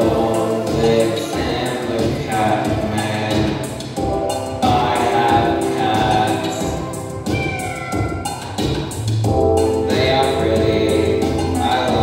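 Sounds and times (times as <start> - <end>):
choir singing held notes: 0.0 - 7.4, 9.8 - 12.0.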